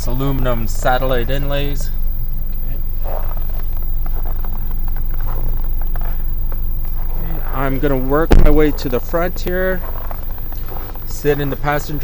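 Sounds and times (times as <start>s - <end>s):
microphone handling clicks: 0.0s - 12.0s
wind on microphone: 1.9s - 11.2s.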